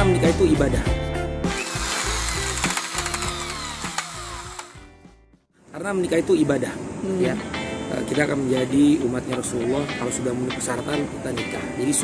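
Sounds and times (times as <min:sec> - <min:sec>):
background music: 0:00.0 - 0:05.4, 0:07.1 - 0:12.0.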